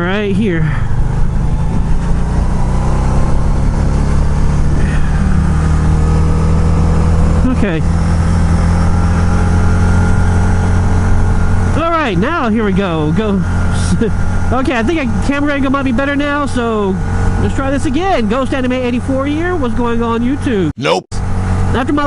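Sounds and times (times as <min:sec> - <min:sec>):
motorcycle engine running: 0:00.0 - 0:20.5
road noise: 0:00.0 - 0:22.0.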